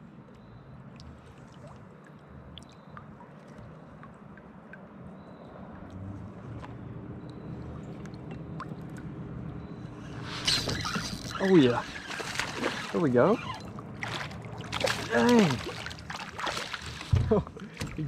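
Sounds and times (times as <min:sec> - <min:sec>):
small drips and clicks: 0:00.2 - 0:09.9
water lapping against kayak hull: 0:05.8 - 0:18.0.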